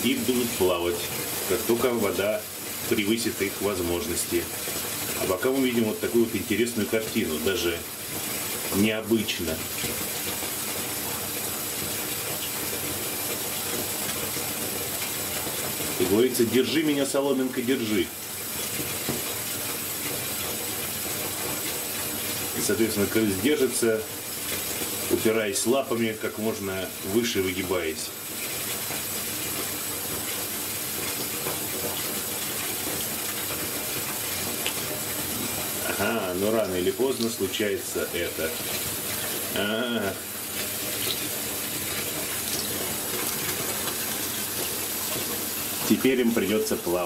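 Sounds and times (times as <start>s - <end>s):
bath tap running water: 0.0s - 47.0s.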